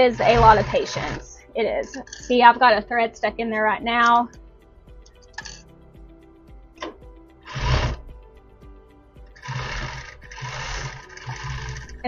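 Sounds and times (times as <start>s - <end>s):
sewing machine stitching: 0.0s - 1.2s, 7.5s - 8.0s, 9.4s - 12.0s.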